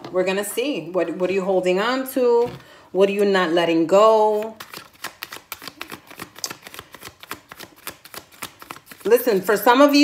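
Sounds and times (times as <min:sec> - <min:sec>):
cards being shuffled: 0:04.3 - 0:09.1.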